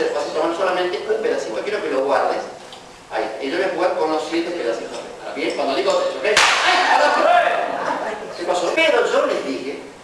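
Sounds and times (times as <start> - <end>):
sharp crack: 6.4 - 7.0.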